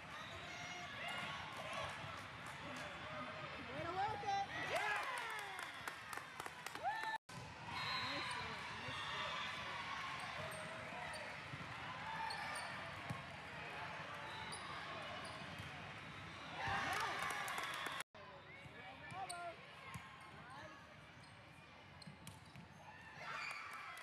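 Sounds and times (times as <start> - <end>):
sneakers squeaking: 12.2 - 13.2, 14.2 - 16.9.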